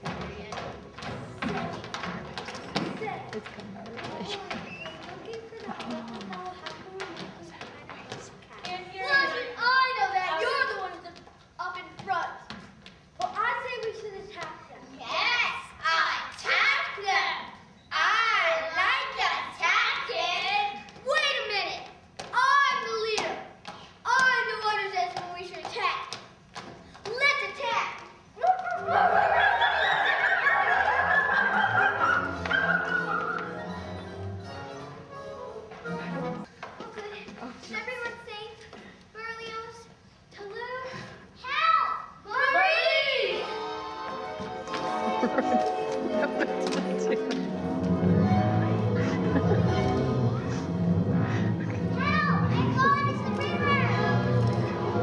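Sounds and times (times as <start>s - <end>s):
music: 0.0s - 3.0s, 30.6s - 36.5s, 43.2s - 55.0s
children calling out: 28.4s - 33.7s.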